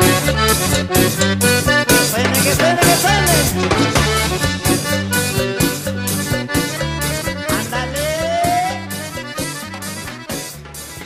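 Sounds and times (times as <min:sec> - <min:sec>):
accordion melody: 0:00.0 - 0:11.0
bass: 0:00.0 - 0:11.0
steady drum beat: 0:00.0 - 0:11.0.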